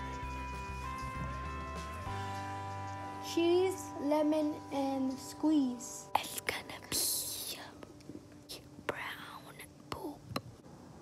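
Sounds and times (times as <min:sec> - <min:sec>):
girl whispering: 0:04.8 - 0:07.9, 0:08.5 - 0:10.3.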